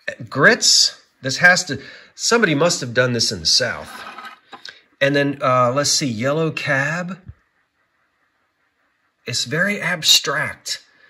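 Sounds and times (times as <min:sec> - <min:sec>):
man talking: 0:00.0 - 0:07.3, 0:09.3 - 0:10.9.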